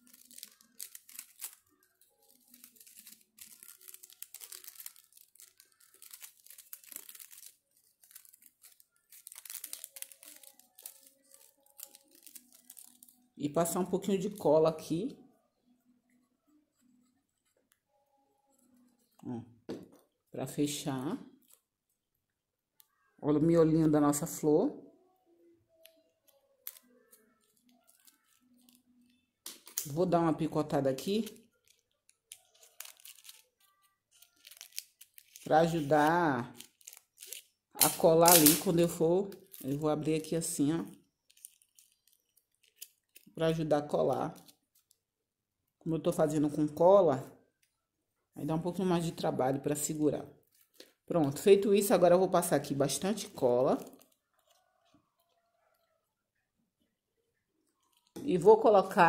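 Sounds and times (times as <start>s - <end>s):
paper rustling and crinkling: 0.0s - 14.4s, 26.6s - 30.0s, 30.9s - 40.6s, 41.2s - 45.0s.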